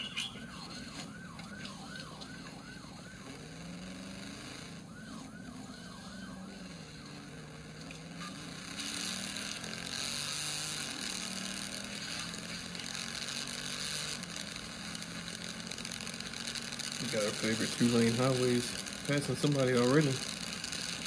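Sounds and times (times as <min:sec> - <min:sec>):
car engine droning: 0:00.0 - 0:21.0
wind and road noise: 0:00.0 - 0:21.0.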